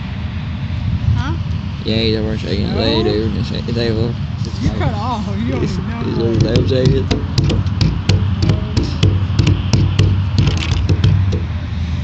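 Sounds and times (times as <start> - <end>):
low rumble: 0.0 - 5.0
wooden table knocking and rattling: 6.4 - 11.5.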